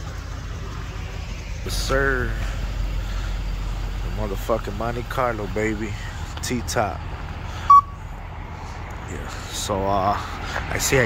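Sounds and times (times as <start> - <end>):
vehicle idling rumble: 0.0 - 11.0
short electronic beep: 7.7 - 8.0.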